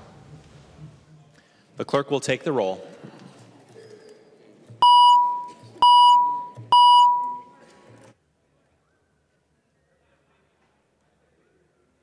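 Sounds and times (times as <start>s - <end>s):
electronic beeps: 4.8s - 7.5s.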